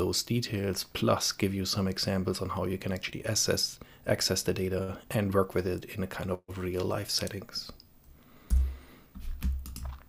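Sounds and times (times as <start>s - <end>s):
computer keyboard key clicks: 9.4s - 10.0s.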